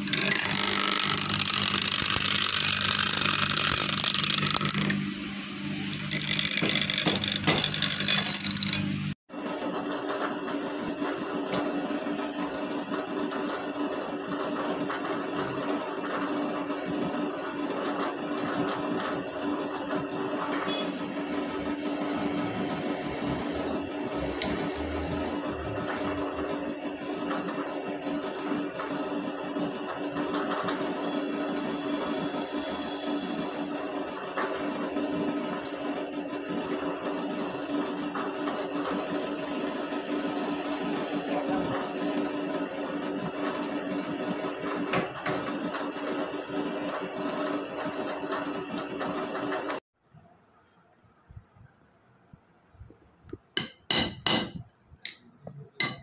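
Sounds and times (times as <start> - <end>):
drill press drilling into steel: 0.0 - 9.2, 20.7 - 26.4.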